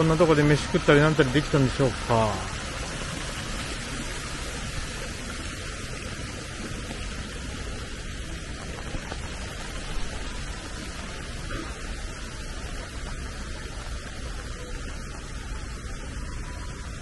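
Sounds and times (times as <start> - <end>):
steady rain: 0.0 - 17.0.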